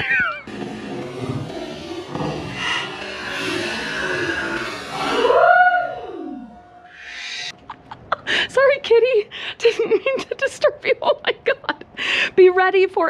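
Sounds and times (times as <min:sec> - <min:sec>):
cat crying: 0:00.0 - 0:00.5.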